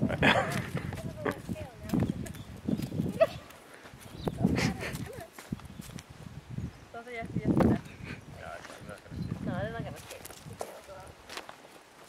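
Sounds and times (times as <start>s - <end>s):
kangaroo hopping on sand: 0.1s - 6.2s, 8.5s - 12.0s.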